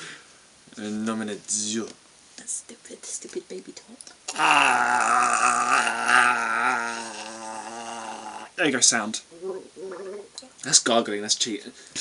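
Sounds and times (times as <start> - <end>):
person gargling water: 4.3 - 8.6.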